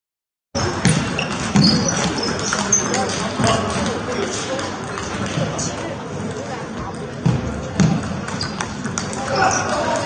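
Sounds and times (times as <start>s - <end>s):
table tennis balls clicking: 0.8s - 10.0s.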